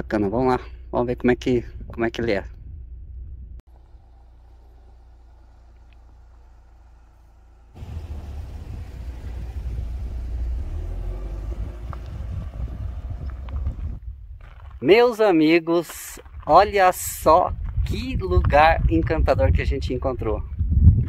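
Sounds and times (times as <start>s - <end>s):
vehicle engine rumble: 0.0s - 14.8s.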